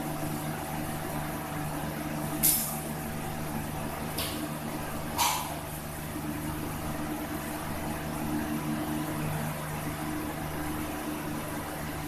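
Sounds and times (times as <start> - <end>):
mechanical hum with low tones: 0.0 - 12.0.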